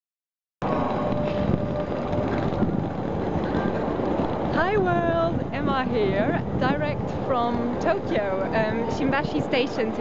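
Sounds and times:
busy city square noise: 0.6 - 10.0
wind buffeting microphone: 0.6 - 10.0.

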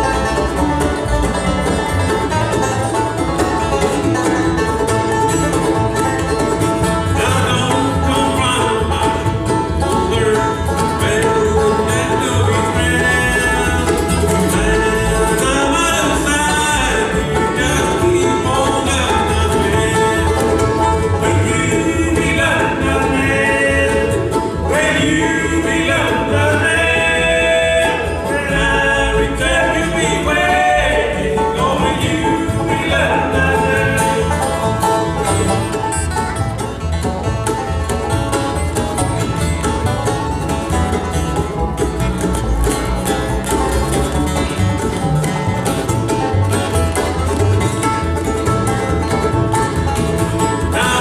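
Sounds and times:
bluegrass band playing: 0.0 - 51.0
people singing: 7.1 - 34.9, 50.6 - 51.0.

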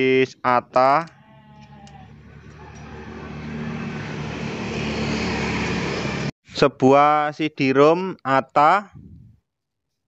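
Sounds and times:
road noise: 1.4 - 6.4
vehicle engine approaching: 1.8 - 6.4.

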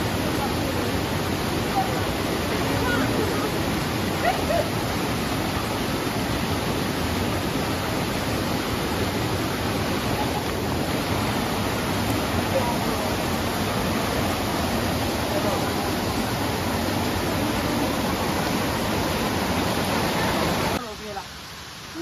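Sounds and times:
stream rushing over boulders: 0.0 - 22.0
faint voices: 10.0 - 21.2.

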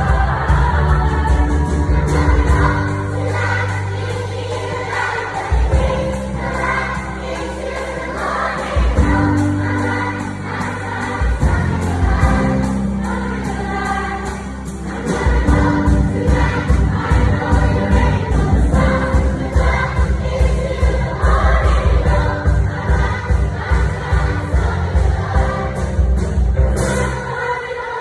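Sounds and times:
girls' choir singing: 0.0 - 28.0
instrumental accompaniment with bass: 0.0 - 28.0.

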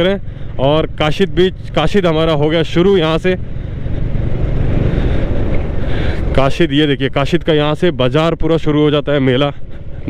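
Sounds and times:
motorcycle riding rumble: 0.0 - 10.0
wind buffeting microphone: 3.3 - 6.6.

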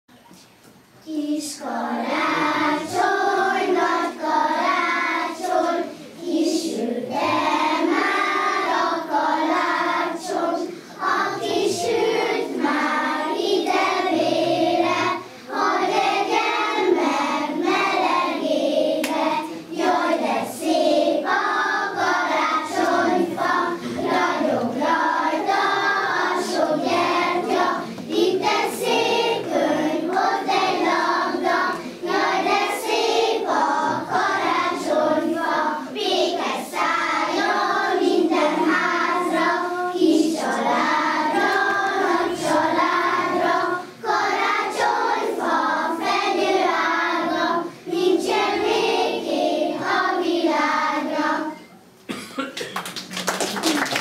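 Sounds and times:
children singing in unison: 1.1 - 51.7.

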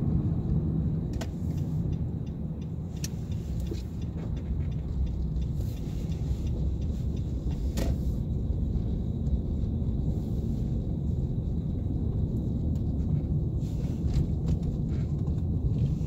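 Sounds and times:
car engine rumble: 0.0 - 16.0
tyres on snowy road: 0.0 - 16.0.

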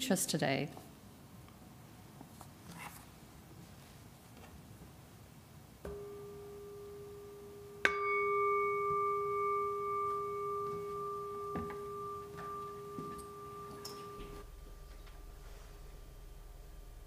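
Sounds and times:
singing bowl ringing: 5.9 - 15.4.

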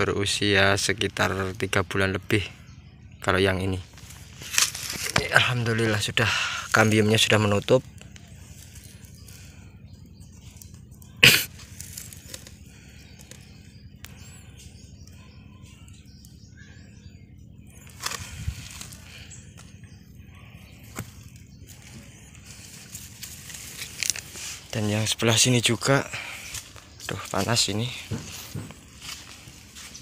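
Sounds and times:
faint bird chirps: 0.0 - 30.0
low steady hum: 0.0 - 30.0.

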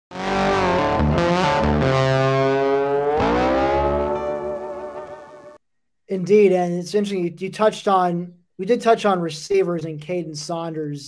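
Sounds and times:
distorted electric guitar chord: 0.1 - 5.6.

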